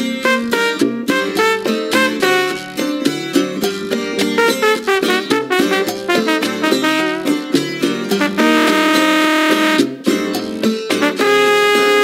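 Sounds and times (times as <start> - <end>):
salsa band music: 0.0 - 12.0.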